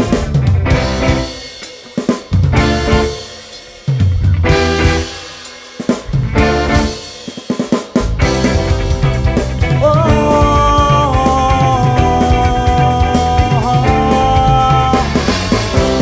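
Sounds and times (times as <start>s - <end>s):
drum fill: 0.0s - 16.0s
live band playing: 0.0s - 16.0s.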